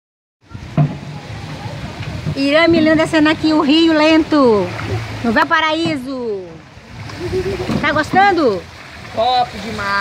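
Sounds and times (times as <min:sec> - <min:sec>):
water rushing: 0:00.4 - 0:10.0.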